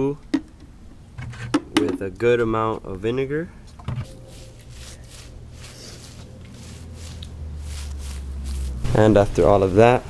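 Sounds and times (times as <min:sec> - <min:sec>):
low steady hum: 0:00.0 - 0:10.0
wet rubbing and squishing: 0:04.0 - 0:10.0.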